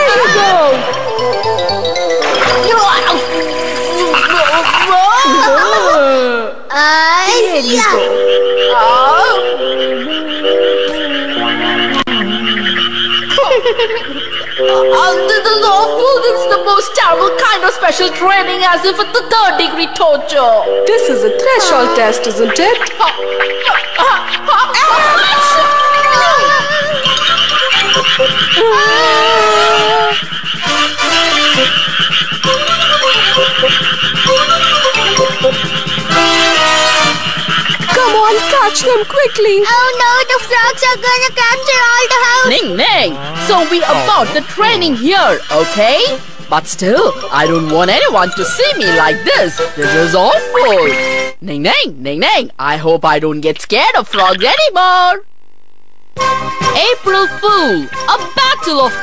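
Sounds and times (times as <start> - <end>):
cartoon frog croaking: 0.0 - 6.0, 7.3 - 20.0, 21.3 - 51.2, 53.5 - 54.8
background music of held notes: 0.0 - 51.4, 56.2 - 59.0.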